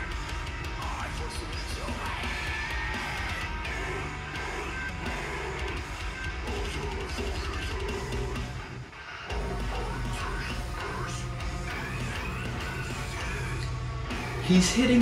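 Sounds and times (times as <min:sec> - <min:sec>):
deathcore metal song: 0:00.0 - 0:15.0
harsh yelled vocals: 0:00.0 - 0:15.0.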